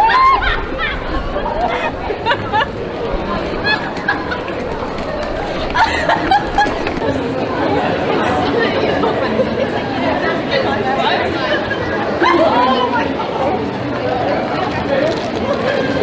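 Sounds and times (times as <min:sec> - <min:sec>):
people talking: 0:00.0 - 0:16.0.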